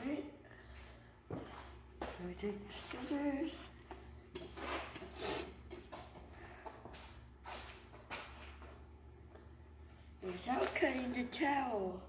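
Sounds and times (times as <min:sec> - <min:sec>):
faint rustling and scraping: 0:00.8 - 0:08.8.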